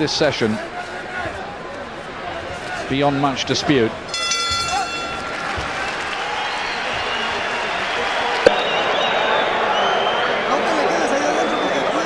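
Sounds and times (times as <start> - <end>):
crowd noise: 0.0 - 12.0
boxing ring bell ringing: 4.1 - 5.6.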